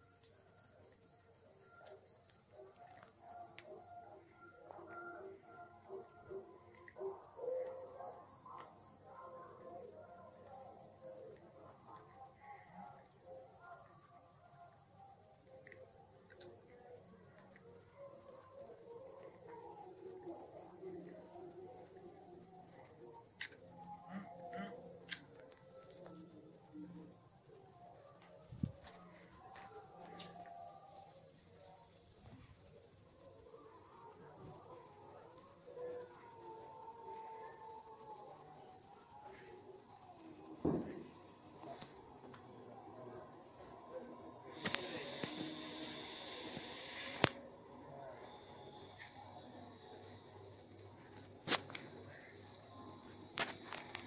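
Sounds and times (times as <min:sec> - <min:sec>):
crickets chirping: 0:00.0 - 0:54.0.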